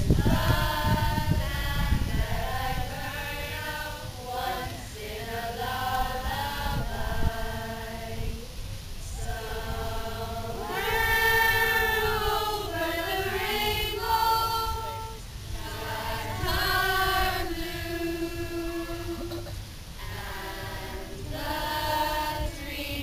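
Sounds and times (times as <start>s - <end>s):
group of young singers unaccompanied: 0.0s - 23.0s.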